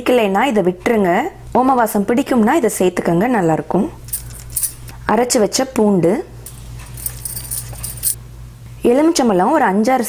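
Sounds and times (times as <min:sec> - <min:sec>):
woman's voice: 0:00.0 - 0:04.0, 0:05.0 - 0:06.3, 0:08.8 - 0:10.0
low steady hum: 0:00.0 - 0:10.0
glass bangles jingling: 0:04.1 - 0:04.8, 0:06.5 - 0:08.2.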